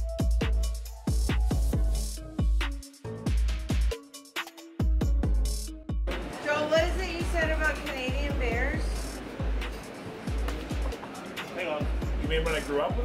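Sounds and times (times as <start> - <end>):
electronic music with deep bass: 0.0 - 11.0, 11.8 - 13.0.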